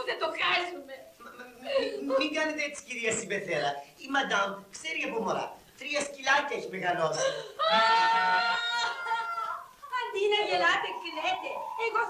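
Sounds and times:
woman wailing: 7.3 - 9.8.

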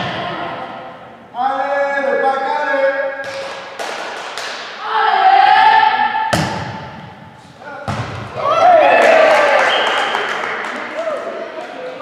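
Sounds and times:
volleyball hit by hands: 6.3 - 7.1, 7.8 - 8.4
players shouting: 8.2 - 11.4.

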